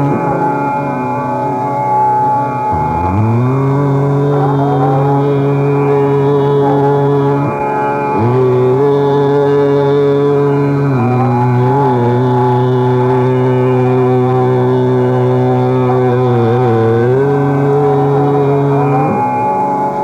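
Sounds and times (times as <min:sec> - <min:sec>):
man singing long held notes: 0:00.0 - 0:20.0.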